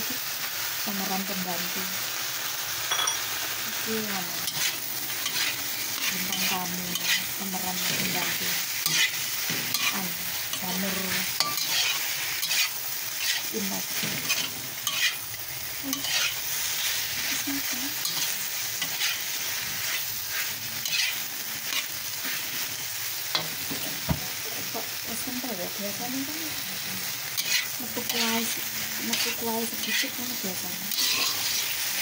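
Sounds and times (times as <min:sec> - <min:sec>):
food sizzling in a wok: 0:00.0 - 0:32.0
metal spatula scraping wok: 0:04.4 - 0:23.9, 0:27.4 - 0:32.0.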